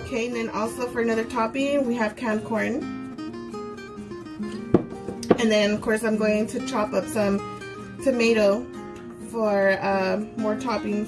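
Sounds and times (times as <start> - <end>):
acoustic guitar music: 0.0 - 11.0
glass bowl knocking on countertop: 4.7 - 5.5.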